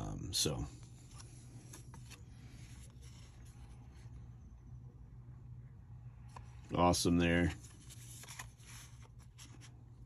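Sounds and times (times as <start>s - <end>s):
low steady hum: 0.0s - 10.0s
cardboard cards rubbing: 0.8s - 4.2s, 7.5s - 10.0s.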